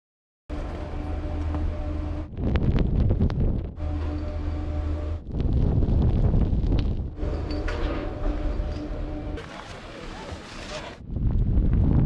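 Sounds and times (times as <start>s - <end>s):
steady low hum: 0.5s - 11.9s
wind buffeting microphone: 2.3s - 3.8s, 5.2s - 8.6s, 11.0s - 12.0s.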